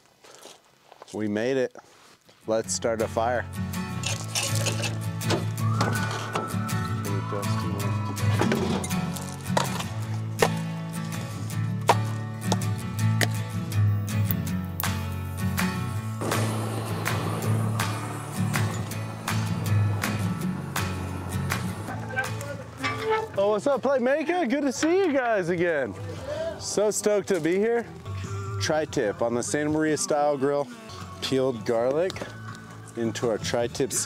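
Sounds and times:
music with bass and beat: 0:05.0 - 0:22.8.

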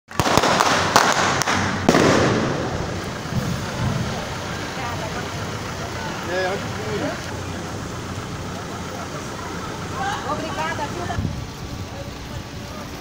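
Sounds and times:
firecrackers banging: 0:00.1 - 0:12.4
crowd voices: 0:00.8 - 0:13.0.

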